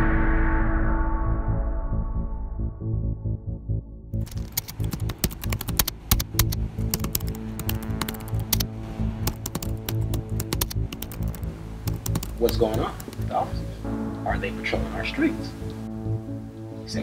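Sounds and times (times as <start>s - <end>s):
background music with low tones: 0.0s - 17.0s
keyboard typing clicks: 4.2s - 13.4s.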